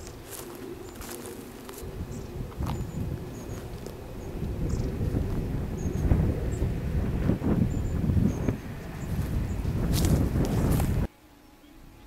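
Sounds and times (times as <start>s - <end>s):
wind buffeting the microphone: 0.0s - 11.1s.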